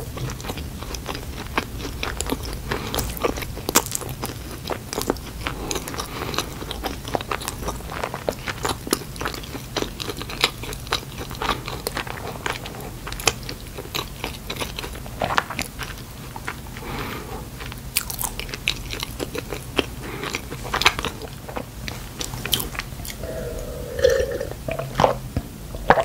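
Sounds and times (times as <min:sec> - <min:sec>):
chewing donut close up: 0:00.0 - 0:25.1.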